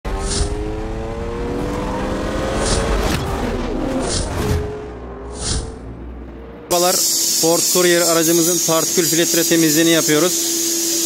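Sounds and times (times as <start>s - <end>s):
sports car engine passing: 0.1s - 7.1s
swoosh: 0.1s - 7.8s.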